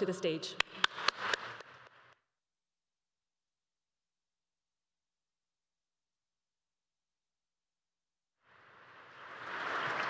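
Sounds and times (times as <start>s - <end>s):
hand claps near microphone: 0.6s - 2.2s
audience applause: 0.8s - 1.8s, 9.1s - 10.0s.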